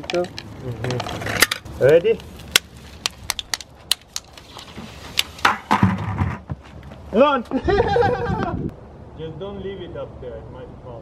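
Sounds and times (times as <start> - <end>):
plastic bottle clicks and crackles: 2.2 - 4.4
plastic bucket crunch and knocks: 5.5 - 6.6.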